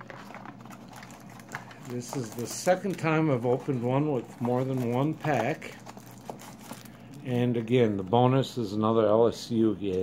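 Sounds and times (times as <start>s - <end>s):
soft rustles of card packs: 0.0s - 10.0s.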